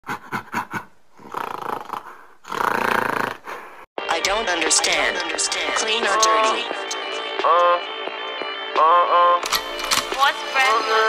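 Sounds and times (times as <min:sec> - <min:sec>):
music: 0:04.0 - 0:11.0.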